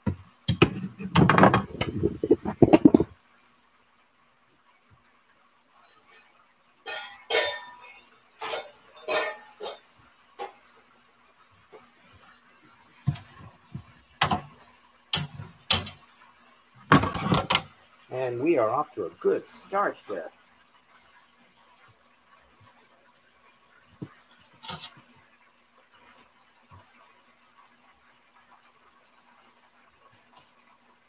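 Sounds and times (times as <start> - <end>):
metal kitchenware clattering: 5.8 - 10.7, 15.2 - 16.0, 16.9 - 17.7.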